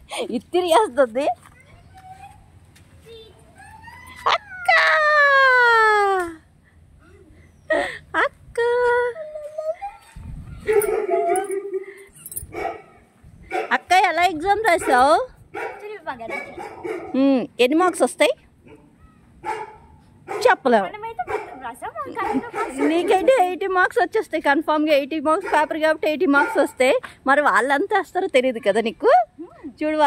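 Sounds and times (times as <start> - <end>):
dog whining: 9.3 - 12.4
dog yip: 9.9 - 12.0, 18.7 - 20.5, 22.2 - 23.3.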